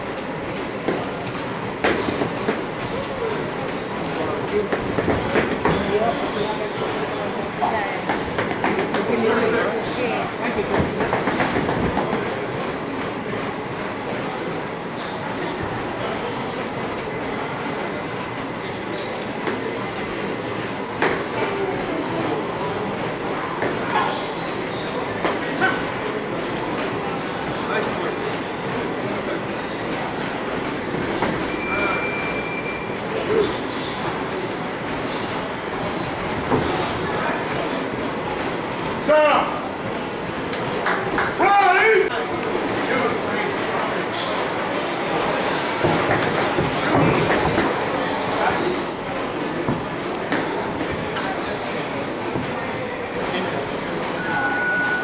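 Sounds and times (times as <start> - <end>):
busy gym din: 0.0 - 55.0
crowd chatter: 0.0 - 55.0.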